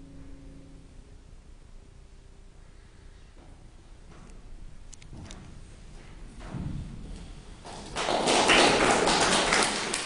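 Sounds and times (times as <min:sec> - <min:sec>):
audience applauding: 0:07.7 - 0:10.0.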